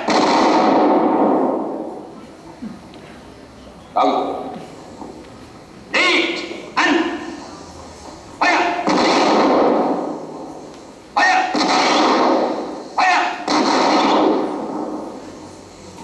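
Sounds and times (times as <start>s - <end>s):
gunfire volleys: 0.0s - 2.0s, 8.4s - 10.6s, 11.2s - 15.4s
short shout: 11.2s - 11.6s, 13.0s - 13.5s.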